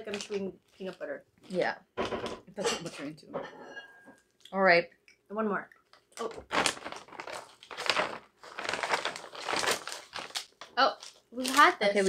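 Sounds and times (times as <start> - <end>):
plastic snack bag crinkling: 0.0 - 1.7, 5.9 - 12.0.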